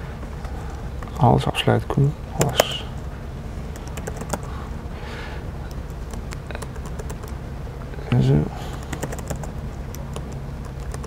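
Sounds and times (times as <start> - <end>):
steady low hum: 0.0 - 11.0
laptop keyboard typing: 3.7 - 4.5, 5.7 - 7.4, 8.7 - 11.0.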